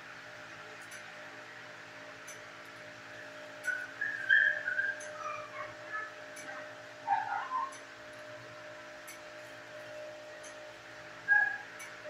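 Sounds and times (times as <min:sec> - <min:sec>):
steady background hum: 0:00.0 - 0:12.0
dog whining: 0:03.7 - 0:07.8, 0:11.3 - 0:11.7.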